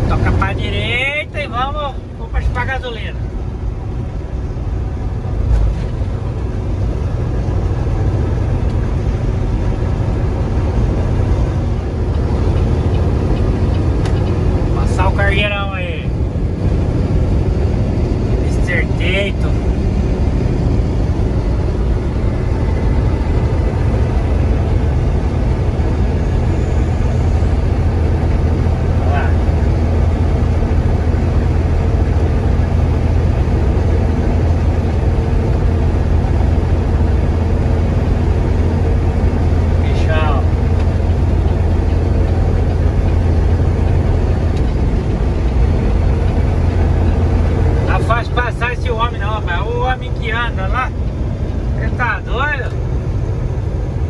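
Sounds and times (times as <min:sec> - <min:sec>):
truck engine and road rumble: 0:00.0 - 0:54.0.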